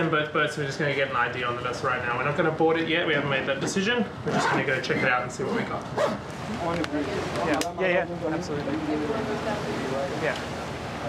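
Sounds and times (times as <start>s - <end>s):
men talking: 0.0s - 11.0s.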